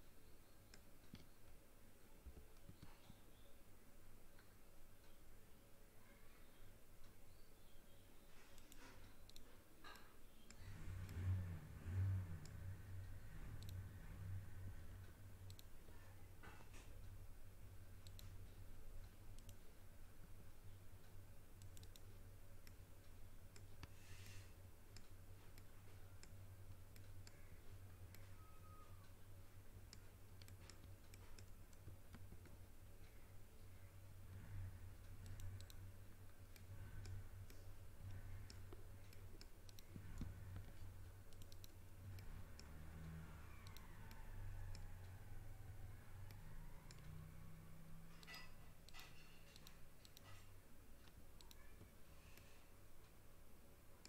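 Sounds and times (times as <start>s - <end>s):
low steady hum: 0.0s - 54.0s
mouse and keyboard clicks: 8.5s - 12.8s, 13.4s - 13.9s, 15.0s - 17.1s, 18.0s - 18.5s, 19.3s - 19.7s, 21.6s - 22.8s, 29.9s - 33.8s, 35.0s - 52.6s.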